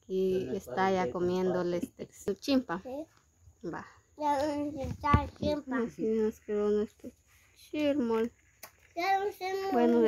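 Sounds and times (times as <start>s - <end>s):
child making sing-song sounds: 4.2s - 5.6s, 8.9s - 10.0s.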